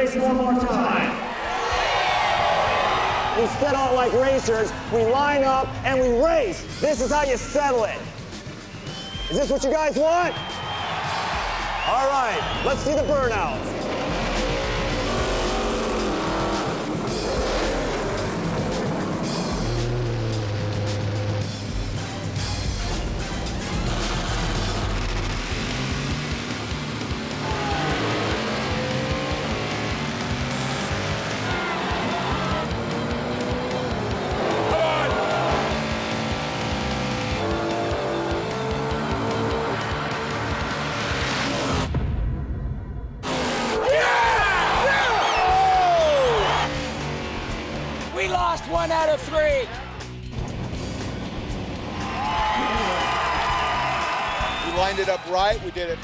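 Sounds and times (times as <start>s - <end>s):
loud background music: 1.7s - 56.0s
car engines revving: 10.3s - 41.9s, 43.2s - 56.0s.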